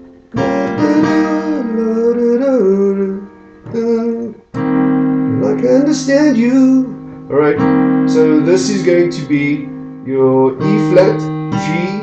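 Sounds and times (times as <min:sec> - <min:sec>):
keyboard piano chord: 0:00.0 - 0:12.0
man singing: 0:00.4 - 0:04.5, 0:05.3 - 0:12.0.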